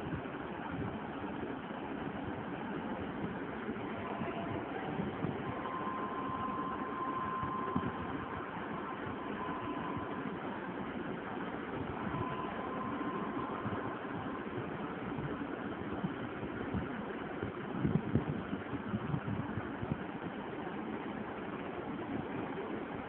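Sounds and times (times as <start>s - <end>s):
background hum and hiss: 0.0s - 23.0s
faint thin high tone: 3.9s - 10.7s, 11.9s - 14.6s.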